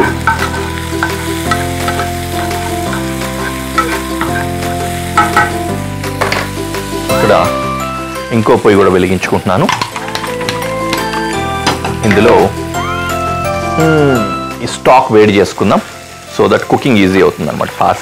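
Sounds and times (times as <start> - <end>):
food sizzling in oil: 0.0 - 18.0
music of sustained chords: 0.0 - 18.0.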